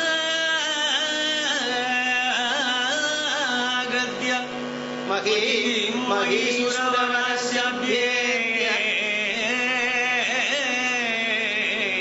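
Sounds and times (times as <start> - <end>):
man singing ornamented notes: 0.0 - 12.0
steady drone: 0.0 - 12.0.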